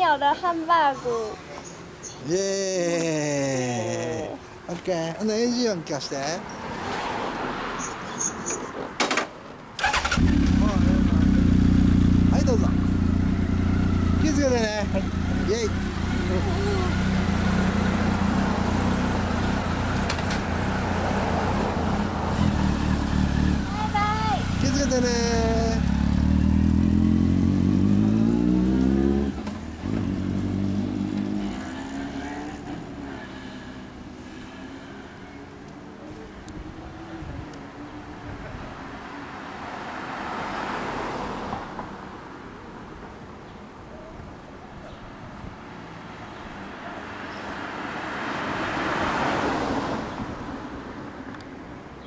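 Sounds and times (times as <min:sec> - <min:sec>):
background traffic: 0:00.0 - 0:52.0
car passing close by: 0:06.1 - 0:08.9, 0:16.0 - 0:35.5, 0:37.9 - 0:42.1, 0:46.0 - 0:51.1
motorcycle engine pulling away: 0:09.8 - 0:33.9.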